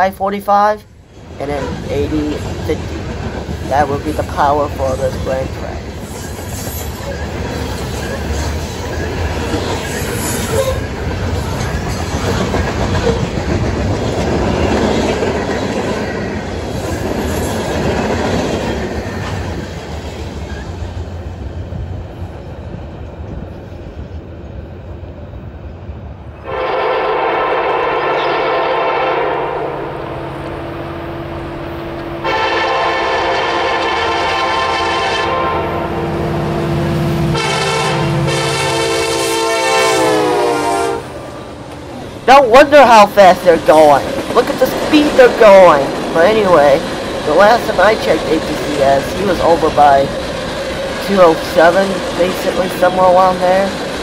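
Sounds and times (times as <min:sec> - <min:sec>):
freight train rumbling past: 0:00.0 - 0:54.0
wheel clickety-clack: 0:06.0 - 0:19.6
diesel locomotive horn blasts: 0:26.4 - 0:31.6, 0:32.2 - 0:41.4.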